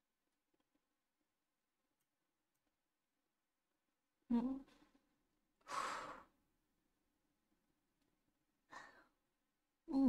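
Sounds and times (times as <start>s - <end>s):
woman short breath: 5.6s - 6.3s.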